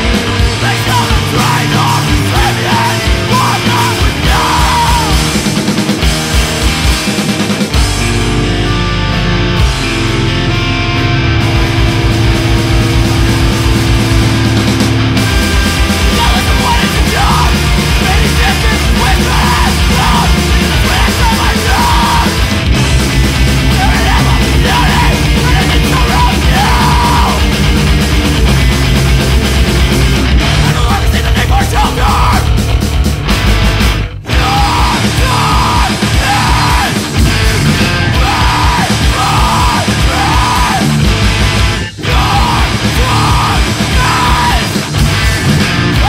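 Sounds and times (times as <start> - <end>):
distorted guitars: 0.0 - 46.0
driving drums: 0.0 - 46.0
loud post-hardcore band music: 0.0 - 46.0
screamed vocals: 0.5 - 5.4, 16.0 - 22.5, 23.6 - 27.5, 30.6 - 32.6, 34.2 - 41.1, 41.8 - 45.0.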